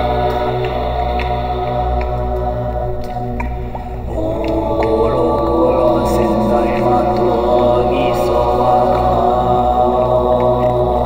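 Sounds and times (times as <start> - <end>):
low drone: 0.0 - 11.0
voices chanting: 0.0 - 11.0.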